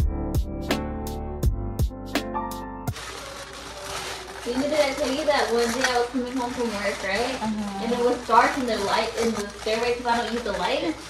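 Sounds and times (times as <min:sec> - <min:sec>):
people talking: 0:03.0 - 0:11.0.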